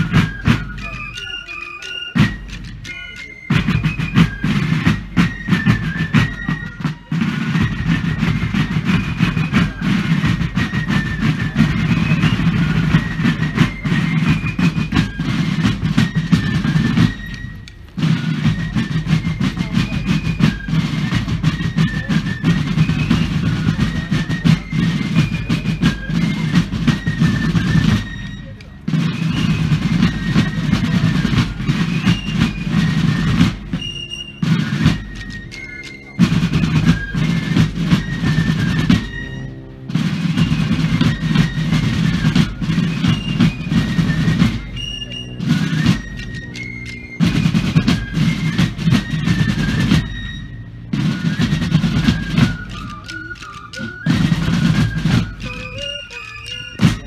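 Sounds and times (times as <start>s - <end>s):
rattling snare drums: 0.0s - 57.0s
shrill fifes playing tune: 0.0s - 57.0s.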